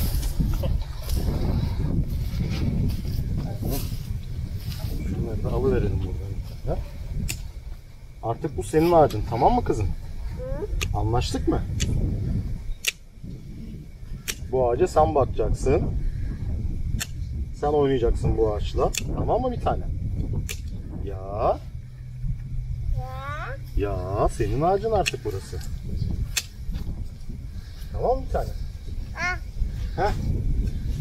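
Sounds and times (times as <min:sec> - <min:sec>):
wind rumble on microphone: 0:00.0 - 0:31.0
sharp click: 0:12.8 - 0:13.0, 0:14.2 - 0:14.4, 0:17.0 - 0:17.2, 0:20.4 - 0:20.8, 0:26.3 - 0:26.6.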